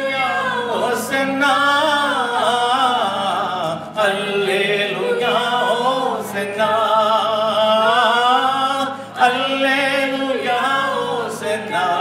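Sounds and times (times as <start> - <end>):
woman and man singing worship song: 0.0 - 12.0.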